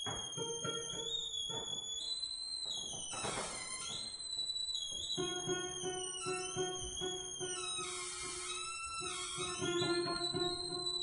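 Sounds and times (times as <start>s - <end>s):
high thin cello tone: 5.2s - 11.0s
scratchy cello bowing: 5.2s - 11.0s.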